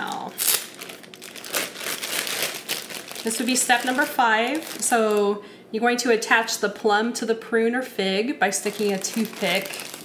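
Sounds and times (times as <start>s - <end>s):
plastic bag crinkling: 0.0s - 5.3s, 8.5s - 10.0s.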